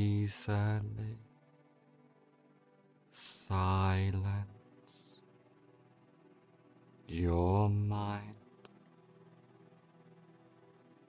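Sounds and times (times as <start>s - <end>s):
man chanting long low tone: 0.0s - 1.3s, 3.2s - 5.2s, 7.1s - 8.4s
faint steady background tone: 0.0s - 11.0s.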